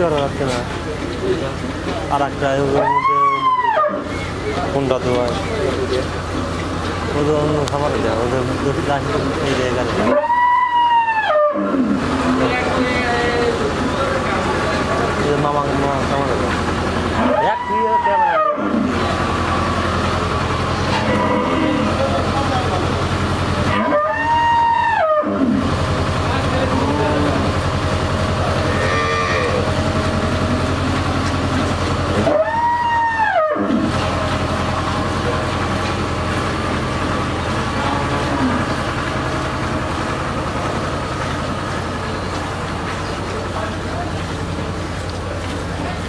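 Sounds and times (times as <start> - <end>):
low mechanical hum: 0.0 - 46.0
cattle mooing: 10.0 - 12.8, 17.2 - 19.2, 20.9 - 22.3, 23.6 - 25.7, 28.5 - 29.9, 37.6 - 38.9.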